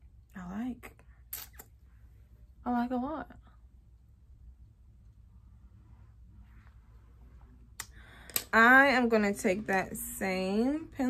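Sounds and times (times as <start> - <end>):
sharp click: 1.3 - 1.7.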